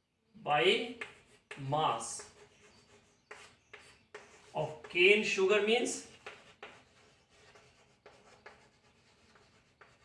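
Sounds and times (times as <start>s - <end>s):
chalk scratching on blackboard: 0.8s - 10.0s
chalk tap: 0.9s - 5.2s, 6.0s - 10.0s.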